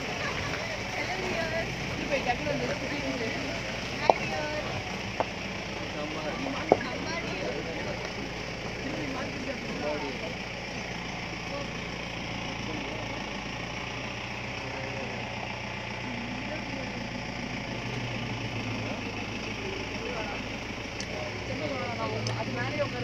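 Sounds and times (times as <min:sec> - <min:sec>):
people talking indistinctly: 0:00.0 - 0:23.0
vehicle engine idling: 0:00.0 - 0:23.0.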